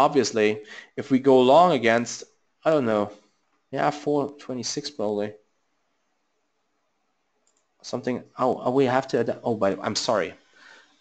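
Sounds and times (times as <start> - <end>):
man's voice: 0.0 - 3.2, 3.8 - 5.4, 7.8 - 10.4
faint click: 7.4 - 7.8.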